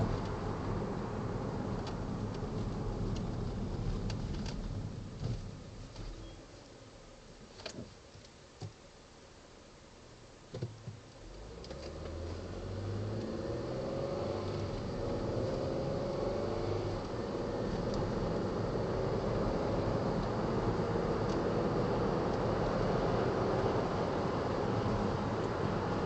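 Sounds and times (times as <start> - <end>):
tyre and road noise: 0.0 - 6.2, 10.5 - 26.0
car engine accelerating: 11.2 - 26.0.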